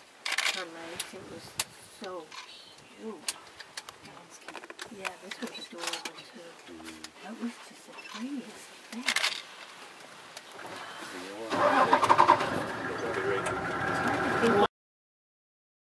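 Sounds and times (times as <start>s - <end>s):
vehicle engine starting and running: 10.6s - 14.7s.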